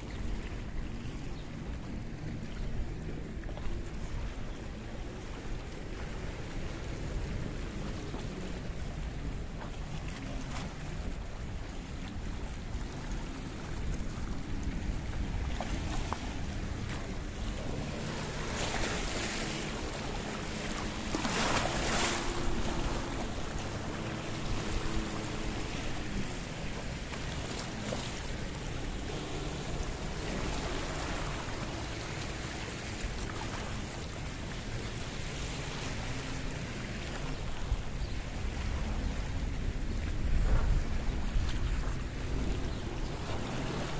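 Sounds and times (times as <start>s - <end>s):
wind buffeting microphone: 0.0s - 43.9s
waves washing over rocks: 12.6s - 43.9s.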